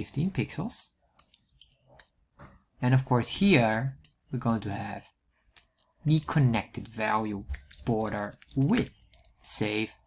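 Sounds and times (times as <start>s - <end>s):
man speaking: 0.0s - 1.0s, 2.8s - 5.2s, 6.0s - 10.0s
computer keyboard and mouse clicks: 1.1s - 2.2s, 7.5s - 9.5s.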